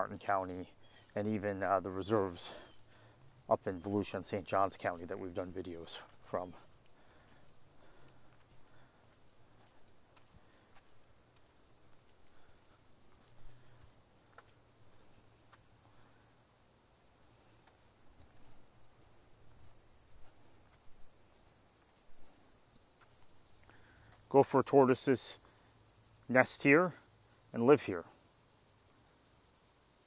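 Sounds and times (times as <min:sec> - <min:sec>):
insects buzzing: 0:00.0 - 0:30.0.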